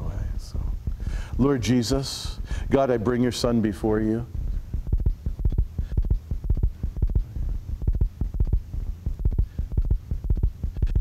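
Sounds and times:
deep rhythmic thumping: 0.0 - 11.0
steady low hum: 0.0 - 11.0.

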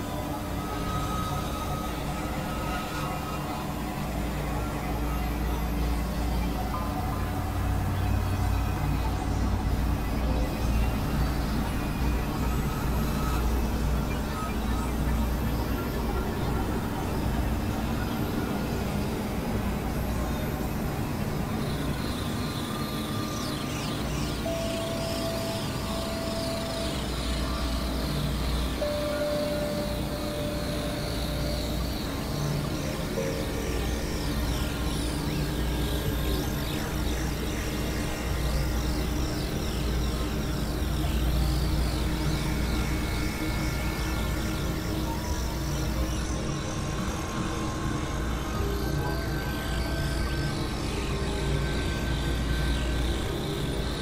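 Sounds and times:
electronic drone music: 0.0 - 54.0.

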